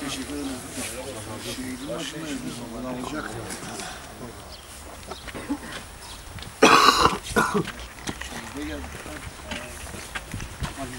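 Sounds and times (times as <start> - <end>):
person coughing: 6.6 - 7.7.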